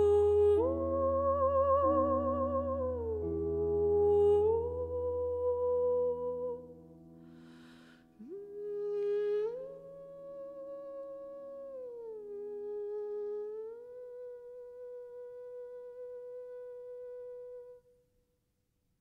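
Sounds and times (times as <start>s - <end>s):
woman humming a slow tune: 0.0s - 6.8s, 8.2s - 17.8s.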